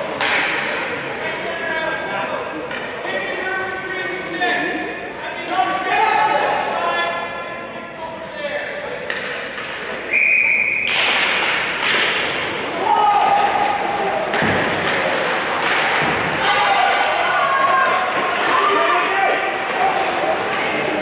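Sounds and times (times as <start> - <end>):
pucks and sticks hitting boards: 0.0 - 1.0, 2.5 - 3.2, 8.9 - 10.1, 10.7 - 21.0.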